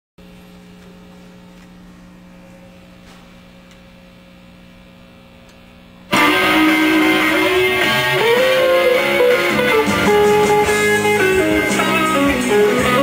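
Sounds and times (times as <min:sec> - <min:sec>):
amplifier mains hum: 0:00.2 - 0:13.0.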